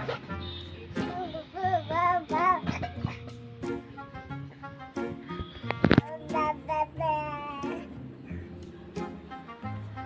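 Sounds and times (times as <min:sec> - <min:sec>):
child singing: 0:01.0 - 0:02.8, 0:06.0 - 0:08.0.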